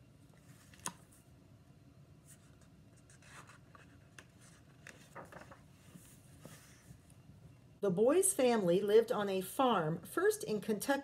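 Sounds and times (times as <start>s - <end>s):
paper page rustling and turning: 0.3s - 1.2s, 2.3s - 7.1s.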